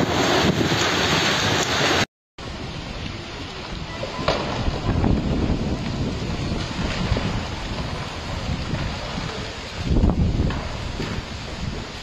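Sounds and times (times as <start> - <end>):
wind rushing through trees: 0.0 - 12.0
wind buffeting microphone: 2.4 - 12.0.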